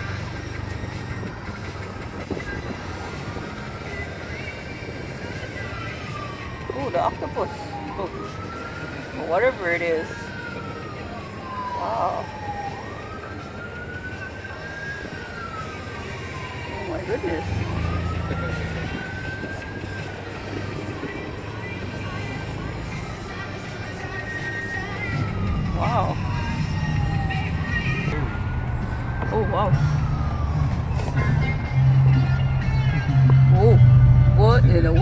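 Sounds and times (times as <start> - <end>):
emergency siren wailing: 0.0 - 35.0.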